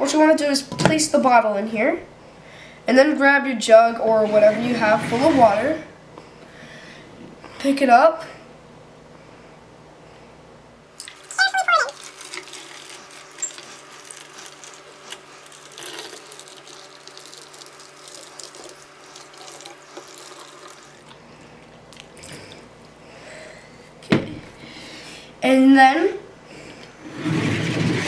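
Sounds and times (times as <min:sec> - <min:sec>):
water pouring into plastic bottle: 0:11.0 - 0:21.1.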